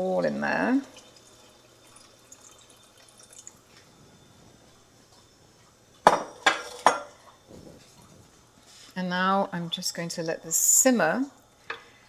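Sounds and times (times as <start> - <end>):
liquid pouring into a pot: 0.5 - 3.8
kitchenware clinking: 6.0 - 7.3.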